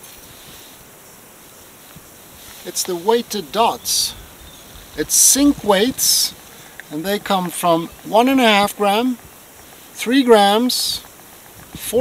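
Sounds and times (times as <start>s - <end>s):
outdoor background hiss: 0.0s - 12.0s.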